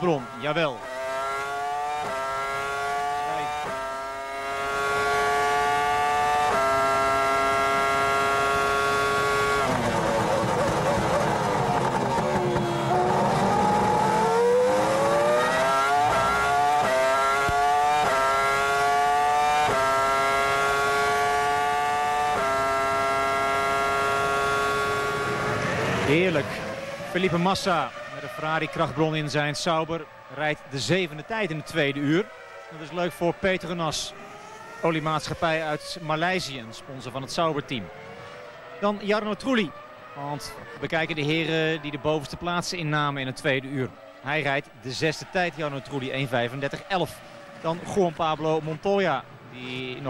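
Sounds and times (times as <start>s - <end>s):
racing car engine screaming: 0.0s - 31.6s.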